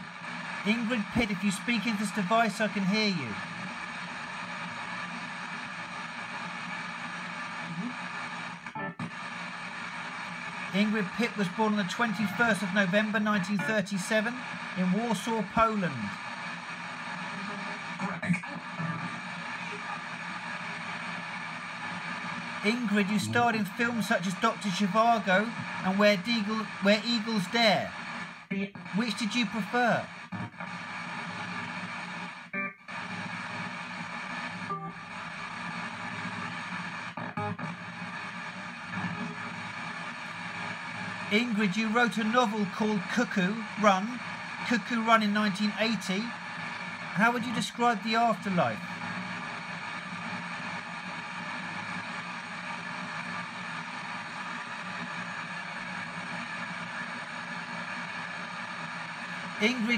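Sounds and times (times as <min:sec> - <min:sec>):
radio static sweeping: 0:00.0 - 0:59.9
snatches of broadcast music: 0:00.0 - 0:59.9.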